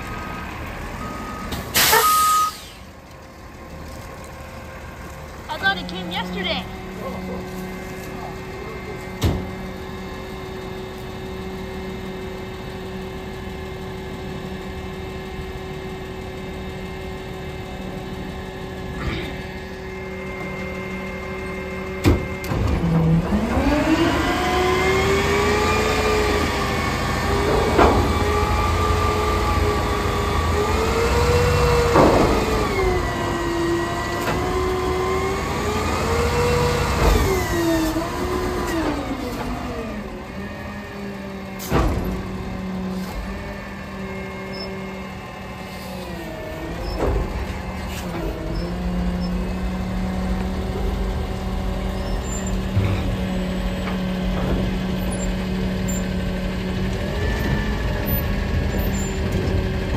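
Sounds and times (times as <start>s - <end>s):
truck engine idling and revving: 0.0s - 59.9s.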